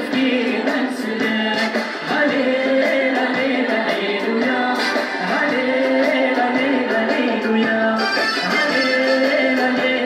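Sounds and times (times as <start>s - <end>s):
drums: 0.0s - 10.0s
woman and man singing together: 0.0s - 10.0s.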